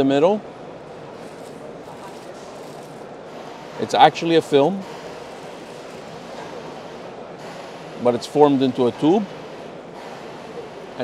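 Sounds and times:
busy exhibition hall hiss: 0.0s - 11.0s.

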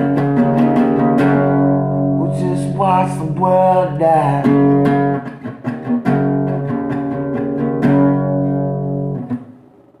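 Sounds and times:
acoustic guitar chords strummed: 0.0s - 10.0s.

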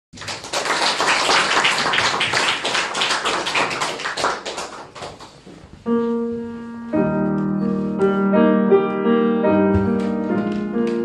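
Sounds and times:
audience applauding: 0.1s - 5.4s.

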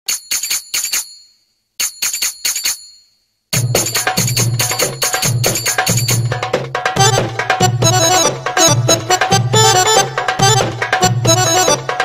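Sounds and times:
tambourine jingling: 0.1s - 7.2s.

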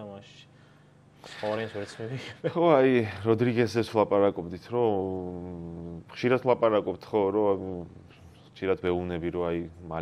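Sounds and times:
man speaking: 1.3s - 10.0s.

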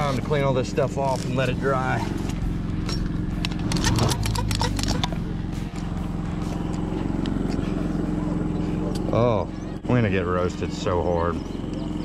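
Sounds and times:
generator humming: 0.0s - 12.0s.

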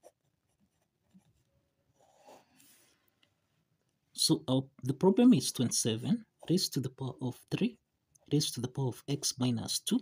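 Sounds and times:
pen scratching on paper: 0.0s - 2.9s, 6.2s - 6.8s.

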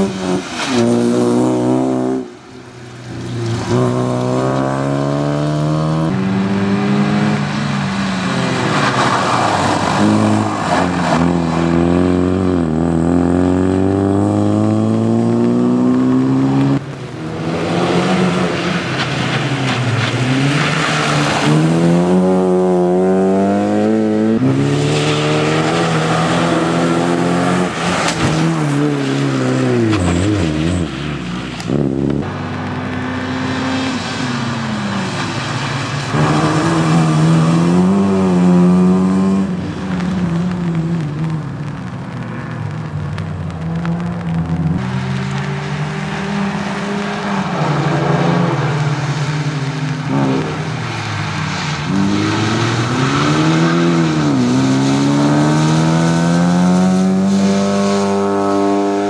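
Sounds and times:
tyre hiss on wet road: 0.1s - 4.3s, 7.3s - 11.8s, 24.6s - 38.1s, 38.7s - 58.8s
race car engine revving: 3.5s - 7.6s, 8.2s - 41.8s, 43.8s - 59.0s.

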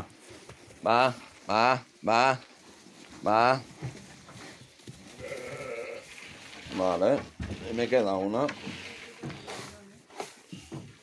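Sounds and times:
faint shuffling of flock: 0.0s - 11.0s
sheep bleating: 5.2s - 6.1s.

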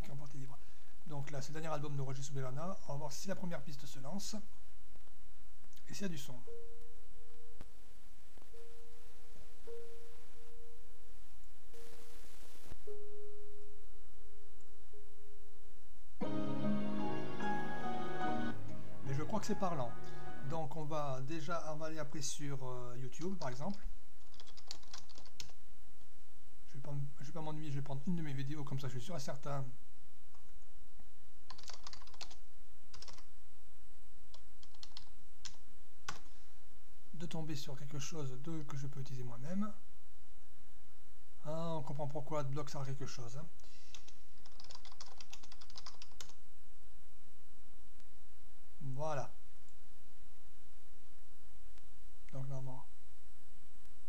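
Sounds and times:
held music tone: 16.2s - 20.9s
keyboard typing: 24.2s - 25.6s, 31.5s - 33.3s, 34.3s - 36.3s, 43.9s - 46.4s.

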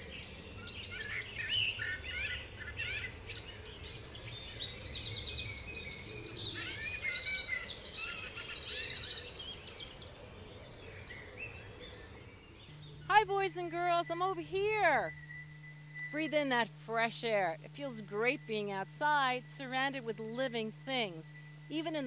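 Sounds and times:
birds singing and chirping: 0.1s - 22.0s
low outdoor rumble: 12.7s - 22.0s.

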